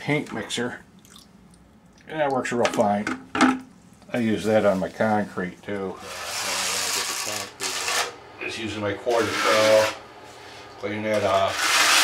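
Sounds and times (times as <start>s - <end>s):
drill mixing mortar in bucket: 6.0s - 8.2s, 9.1s - 10.0s, 11.2s - 12.0s.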